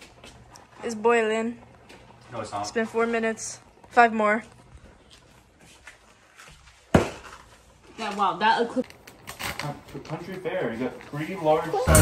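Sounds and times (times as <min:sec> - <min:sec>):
faint footsteps and shuffling: 0:00.0 - 0:08.4.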